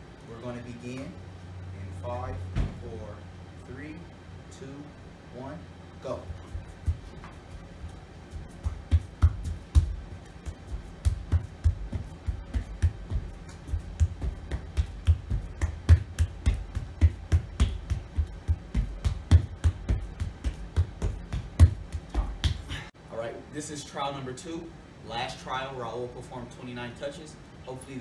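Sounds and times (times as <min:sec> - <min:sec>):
hands slapping rubber floor: 0:08.3 - 0:22.8.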